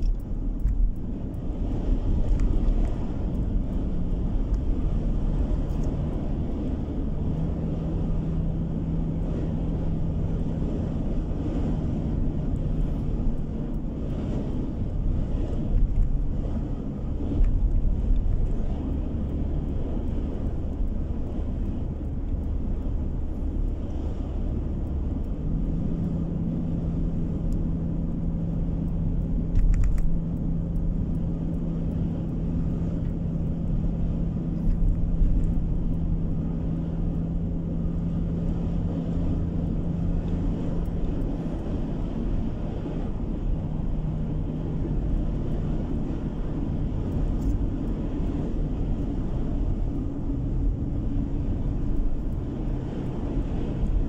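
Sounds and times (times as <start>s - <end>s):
car engine hum: 0.0s - 54.0s
tyre and road rumble: 0.0s - 54.0s.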